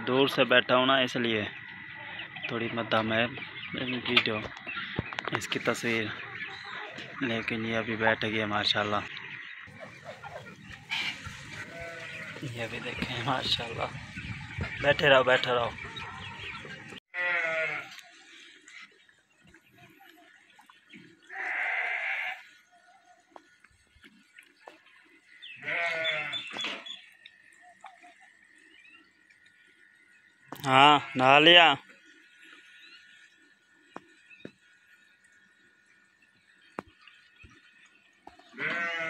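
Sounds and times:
goat bleating: 11.5 - 12.4, 17.1 - 18.0, 21.3 - 22.4, 25.6 - 26.6, 38.6 - 39.0.

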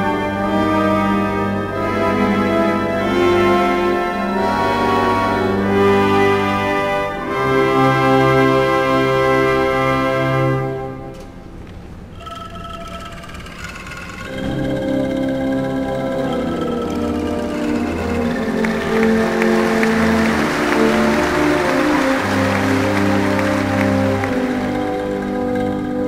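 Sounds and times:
military band playing slow chords: 0.0 - 11.2, 14.3 - 26.0.

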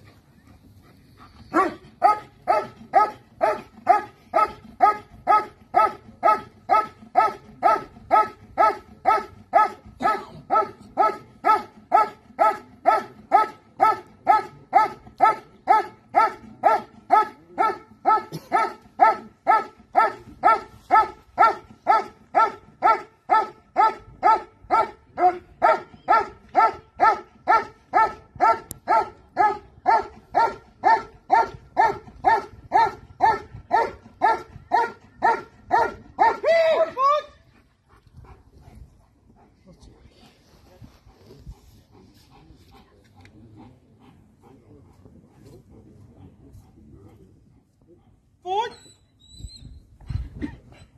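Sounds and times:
dog barking: 1.5 - 25.0, 25.6 - 36.4.

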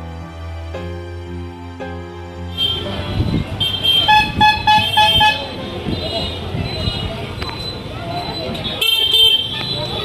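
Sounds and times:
street traffic: 0.0 - 10.0
crowd voices: 2.4 - 10.0.

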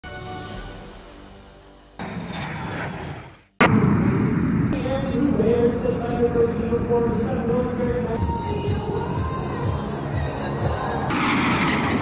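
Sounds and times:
jet noise: 2.0 - 8.2, 11.1 - 12.0.

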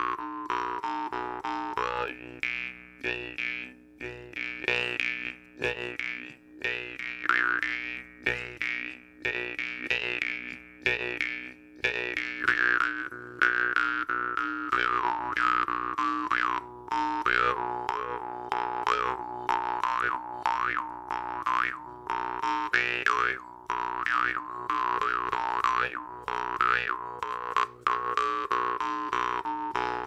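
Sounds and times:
jaw harp plucked: 0.0 - 30.0.

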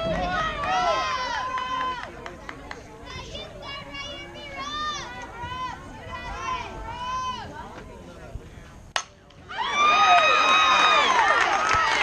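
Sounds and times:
girls calling out and cheering: 3.0 - 7.6.

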